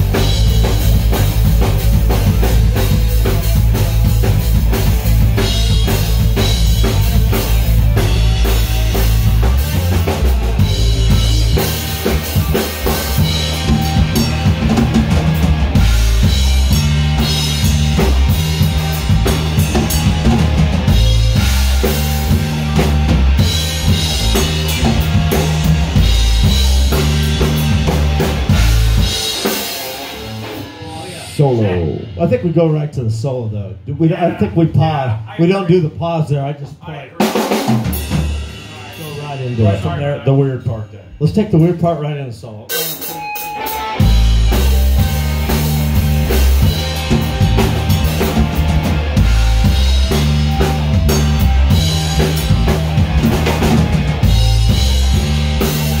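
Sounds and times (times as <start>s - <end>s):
rock band playing live: 0.0s - 56.0s.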